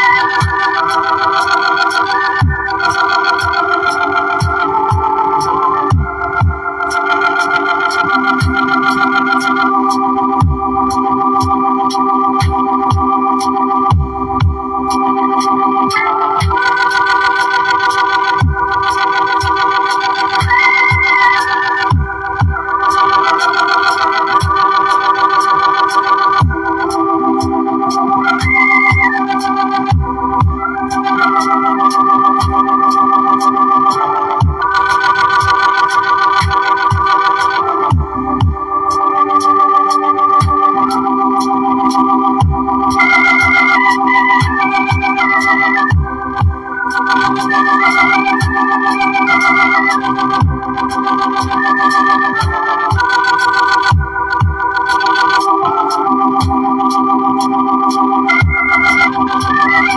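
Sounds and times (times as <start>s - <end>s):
electronic keyboard organ-like chords: 0.0s - 59.9s
higher melody line: 0.0s - 59.9s
low drum beat: 4.4s - 6.7s, 12.4s - 14.6s, 18.4s - 19.0s, 21.9s - 23.0s, 26.4s - 27.5s, 29.9s - 31.0s, 37.9s - 38.6s, 42.4s - 42.6s, 45.9s - 46.7s, 50.4s - 51.6s, 53.9s - 54.9s.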